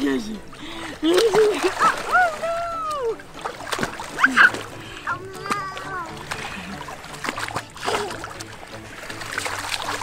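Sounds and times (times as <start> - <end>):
baby splashing in water: 0.8 - 10.0.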